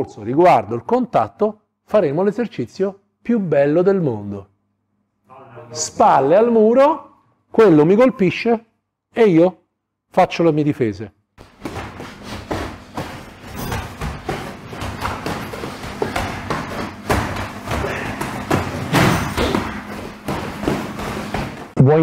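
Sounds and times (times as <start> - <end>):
boxing gloves thumping: 11.4 - 21.8
footfalls on mats: 11.4 - 21.8.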